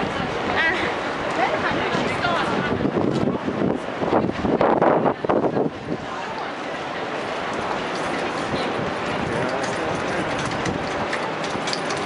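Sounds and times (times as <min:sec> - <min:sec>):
hand trolley wheels rattling: 0:07.4 - 0:12.0.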